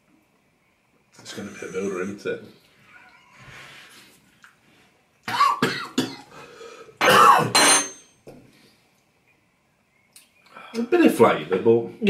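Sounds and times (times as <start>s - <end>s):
man coughing: 5.3s - 6.3s, 7.0s - 7.7s.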